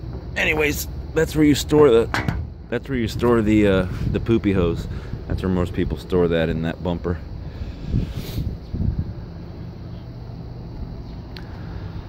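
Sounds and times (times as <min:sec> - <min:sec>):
low mechanical hum: 0:00.0 - 0:12.0
faint click: 0:10.7 - 0:11.6.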